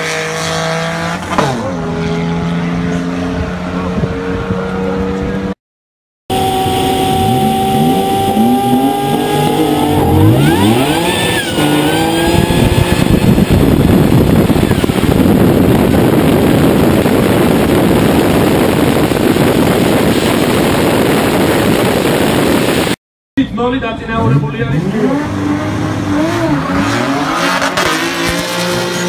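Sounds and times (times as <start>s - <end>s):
wind noise: 3.3s - 5.5s, 6.3s - 23.0s
race car engine revving: 6.3s - 22.9s, 24.0s - 29.0s.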